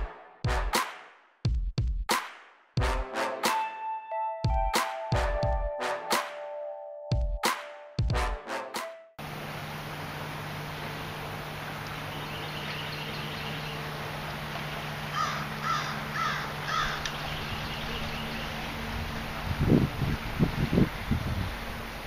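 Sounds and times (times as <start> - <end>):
steady low hum: 9.2 - 22.0
bird calls: 11.8 - 18.9.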